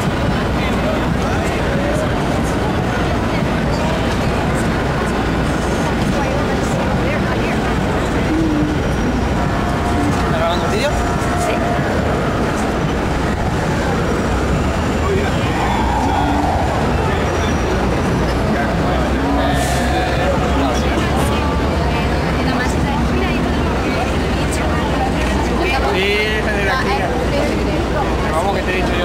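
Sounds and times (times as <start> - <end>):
din of many voices: 0.0 - 29.0
traffic noise: 0.0 - 29.0.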